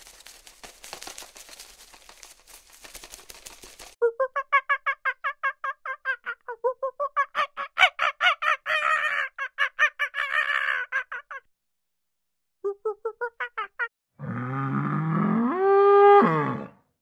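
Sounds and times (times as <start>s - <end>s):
harsh animal calls: 7.3s - 11.5s.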